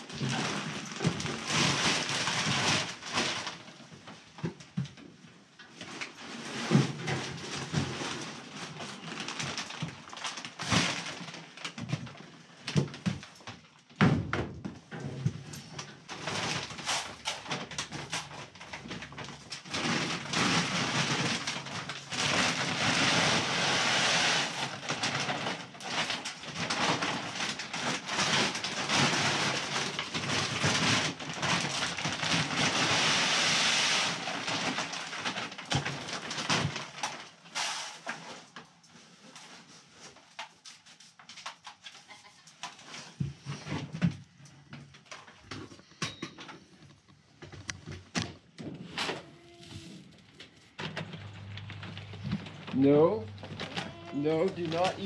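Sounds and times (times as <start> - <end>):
grain feed pouring into drum: 19.8 - 35.2
goat bleating: 49.2 - 50.0, 53.7 - 54.2.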